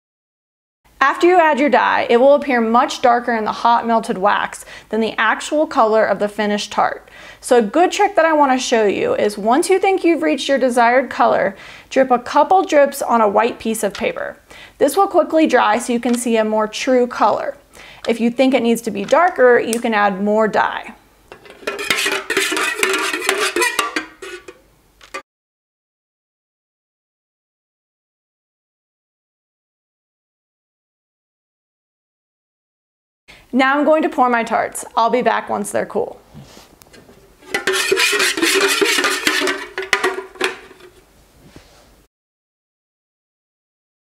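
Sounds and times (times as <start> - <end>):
utensil scraping metal pitcher: 21.3 - 25.2, 36.9 - 41.0.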